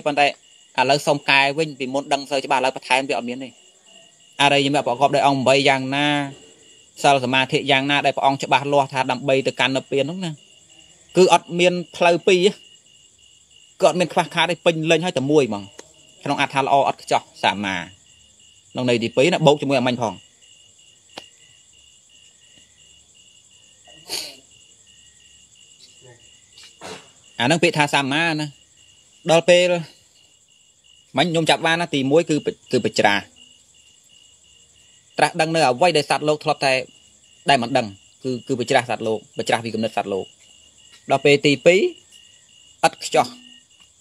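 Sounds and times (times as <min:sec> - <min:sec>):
man preaching: 0:00.0 - 0:03.6, 0:04.4 - 0:10.4, 0:11.1 - 0:12.6, 0:13.8 - 0:18.0, 0:18.8 - 0:20.2, 0:27.4 - 0:28.6, 0:29.3 - 0:29.9, 0:31.2 - 0:33.3, 0:35.2 - 0:36.9, 0:37.5 - 0:40.3, 0:41.1 - 0:42.0, 0:42.8 - 0:43.4
man speaking: 0:00.0 - 0:03.6, 0:04.4 - 0:10.4, 0:11.1 - 0:12.6, 0:13.8 - 0:18.0, 0:18.7 - 0:20.2, 0:25.9 - 0:26.2, 0:27.4 - 0:28.6, 0:29.2 - 0:30.0, 0:31.2 - 0:33.3, 0:35.2 - 0:36.9, 0:37.5 - 0:40.3, 0:41.1 - 0:42.0, 0:42.8 - 0:43.6
crickets chirping: 0:00.0 - 0:44.0.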